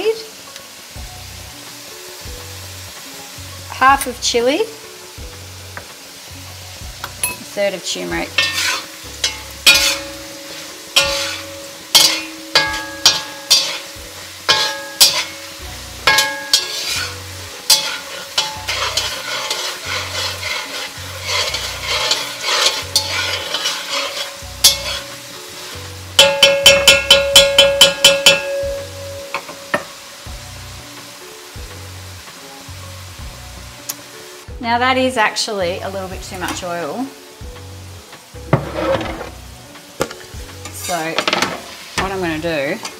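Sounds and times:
potatoes frying in oil: 0:00.0 - 0:42.9
metal spatula scraping a pan: 0:07.2 - 0:29.8, 0:38.4 - 0:42.9.

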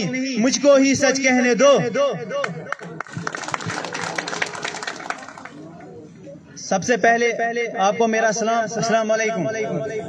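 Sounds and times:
crowd applauding: 0:02.7 - 0:05.7.

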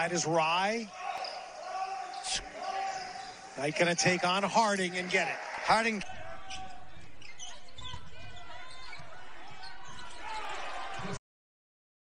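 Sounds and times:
crowd chatter: 0:00.9 - 0:11.2.

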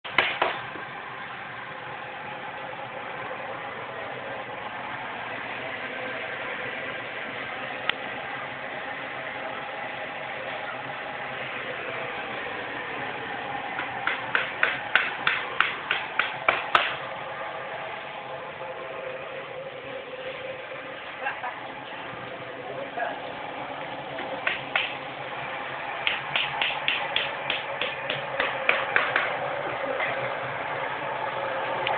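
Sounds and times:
sharp knocks: 0:00.1 - 0:00.6, 0:13.8 - 0:17.0, 0:24.4 - 0:25.0, 0:26.0 - 0:29.4
gas burner rushing: 0:00.1 - 0:31.9.

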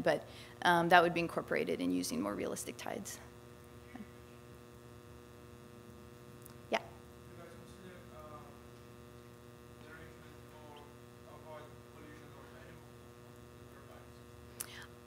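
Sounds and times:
electrical mains hum: 0:00.0 - 0:15.0.

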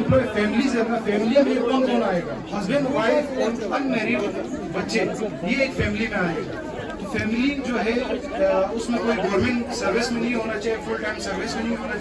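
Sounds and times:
background voices chattering: 0:00.0 - 0:12.0
man speaking into a microphone: 0:00.0 - 0:12.0.

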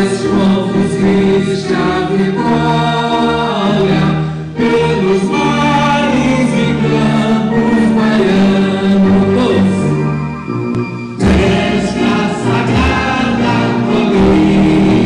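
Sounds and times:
voices singing a hymn: 0:00.0 - 0:10.4, 0:11.2 - 0:15.0
musical accompaniment: 0:00.0 - 0:15.0.

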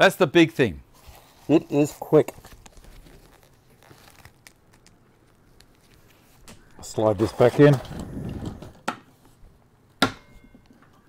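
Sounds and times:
face mask rustling: 0:00.9 - 0:09.4.

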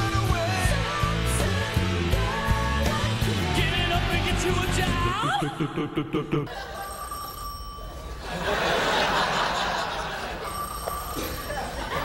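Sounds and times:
telephone ringing: 0:06.5 - 0:12.0
studio audience laughter: 0:08.2 - 0:10.5.

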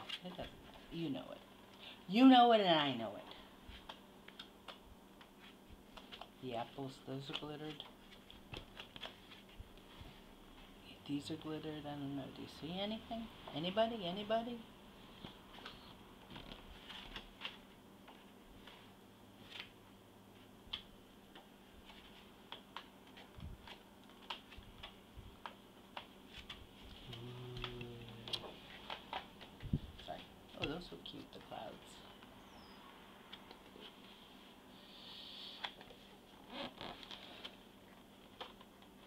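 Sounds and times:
low steady hum: 0:00.0 - 0:39.0
paper pages flipping: 0:07.3 - 0:09.6, 0:15.5 - 0:19.8, 0:20.7 - 0:27.0
paper rustling and flapping: 0:15.5 - 0:17.6.

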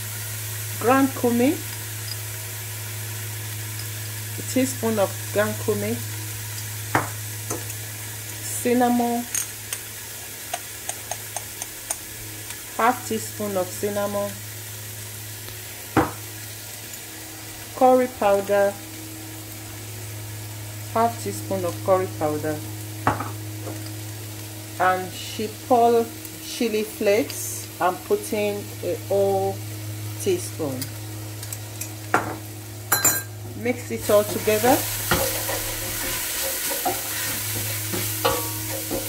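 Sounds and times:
food sizzling in a pan: 0:00.0 - 0:39.0.

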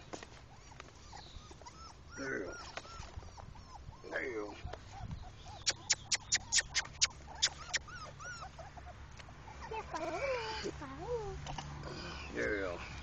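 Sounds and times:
puppies whimpering: 0:00.2 - 0:13.0.

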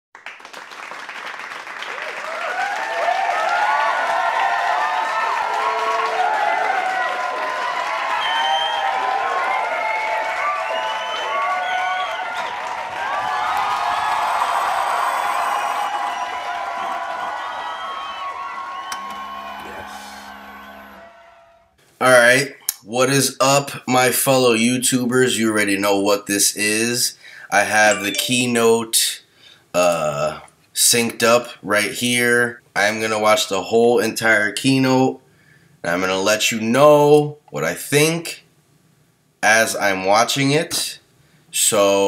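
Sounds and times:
crowd chattering and cheering: 0:15.8 - 0:21.5
short low hum: 0:18.9 - 0:21.7.

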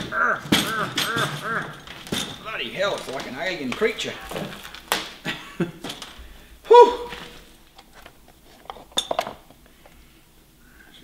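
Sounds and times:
metal frame clinks and knocks: 0:00.0 - 0:05.2, 0:07.8 - 0:09.6.

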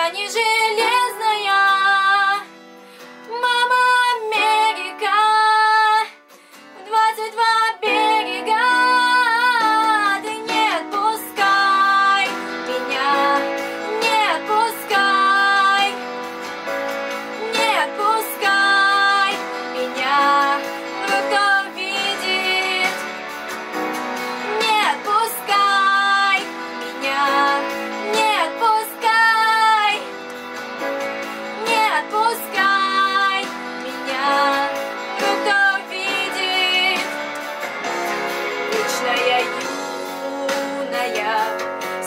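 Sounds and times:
girl singing pop ballad: 0:00.0 - 0:42.0
keyboard chords: 0:07.8 - 0:42.0.

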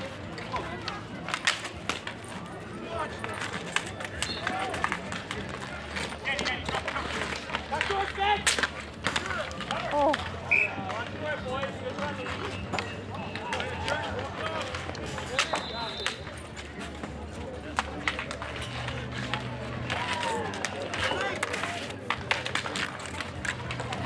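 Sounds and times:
hockey sticks clacking on asphalt: 0:00.0 - 0:24.0
players shouting: 0:19.0 - 0:24.0.

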